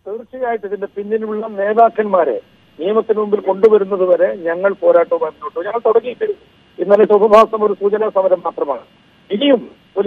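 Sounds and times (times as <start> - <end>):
man talking over telephone: 0.0 - 10.0.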